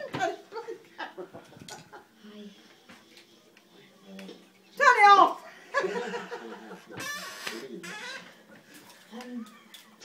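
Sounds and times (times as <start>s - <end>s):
woman talking: 4.8s - 5.4s.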